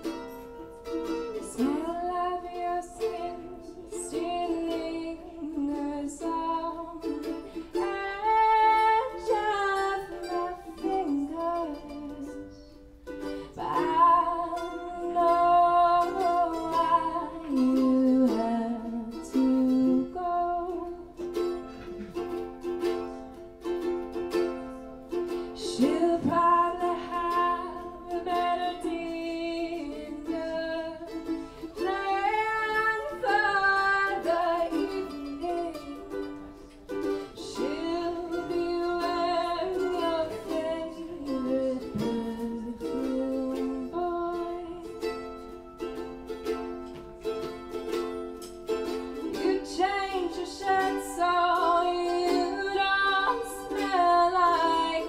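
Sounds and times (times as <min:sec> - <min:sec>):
mandolin playing: 0:00.0 - 0:55.0
ukulele strumming: 0:00.0 - 0:55.0
woman singing: 0:01.2 - 0:12.8, 0:13.4 - 0:21.8, 0:25.4 - 0:45.5, 0:48.8 - 0:55.0.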